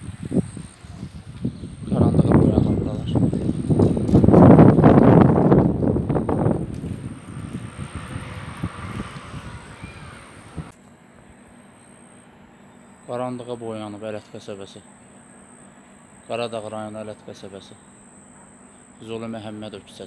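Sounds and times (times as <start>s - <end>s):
gusty wind buffeting microphone: 0.0s - 10.7s
faint steady hum: 9.5s - 20.0s.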